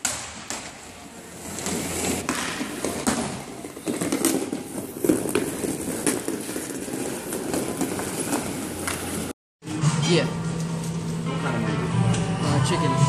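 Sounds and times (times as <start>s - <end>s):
hockey sticks clacking on floor: 0.0s - 9.4s.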